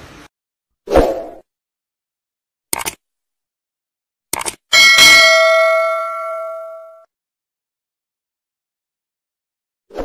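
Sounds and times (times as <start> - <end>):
cursor click: 2.7 - 3.0, 4.3 - 4.6
bright bell ding: 4.7 - 7.1.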